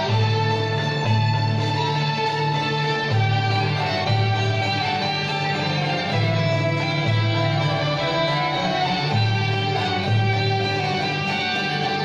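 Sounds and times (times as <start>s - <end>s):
string ensemble playing: 0.0s - 12.0s.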